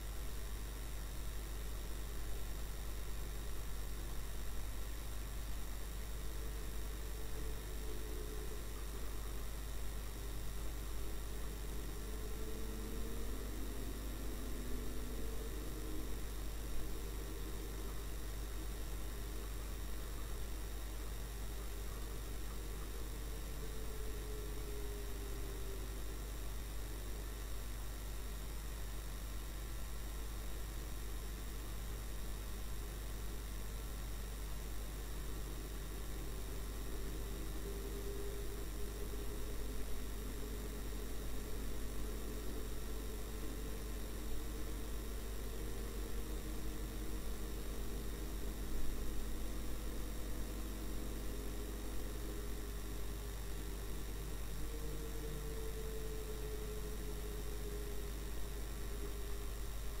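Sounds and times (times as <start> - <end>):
electrical hum and hiss: 0.0 - 60.0
faint vehicle engine drone: 0.0 - 60.0.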